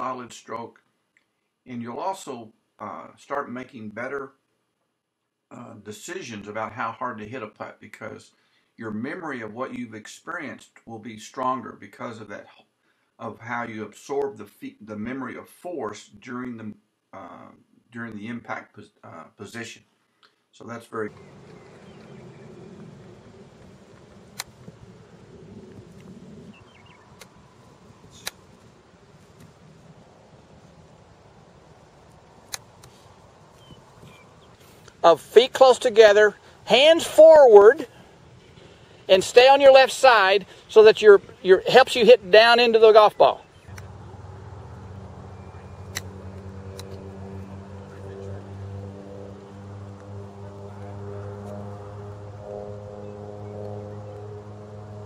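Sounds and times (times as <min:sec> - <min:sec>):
low droning hum: 0:21.1 - 0:34.8, 0:43.5 - 0:55.0
sharp clicks: 0:27.2 - 0:27.4, 0:32.4 - 0:33.0, 0:43.6 - 0:44.0, 0:45.8 - 0:47.0.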